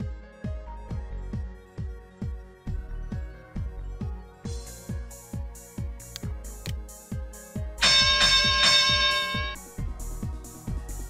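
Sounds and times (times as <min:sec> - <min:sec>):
electronic music with kick drum: 0:00.0 - 0:11.0
loud held chord: 0:07.8 - 0:09.6.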